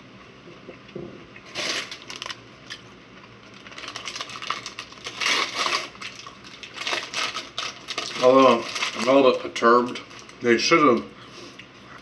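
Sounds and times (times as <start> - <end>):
paper bag crinkling: 1.5 - 2.4, 3.5 - 10.5.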